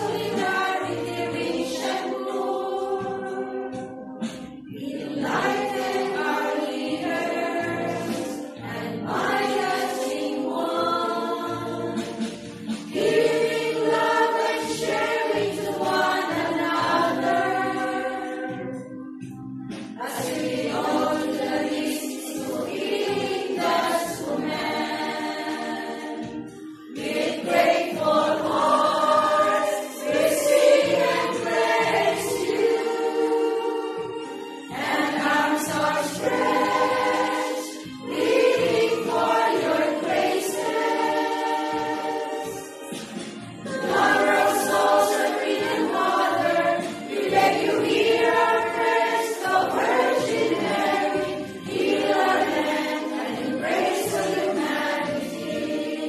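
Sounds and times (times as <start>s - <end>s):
women's choir singing a hymn: 0.0s - 56.0s.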